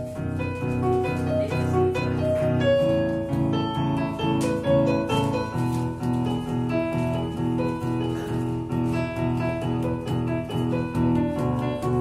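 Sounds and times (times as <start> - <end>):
keyboard playing repeated chords: 0.0 - 12.0.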